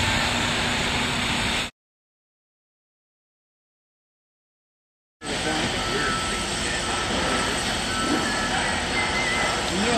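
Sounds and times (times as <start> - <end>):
construction machinery running: 0.0 - 1.7, 5.2 - 9.9.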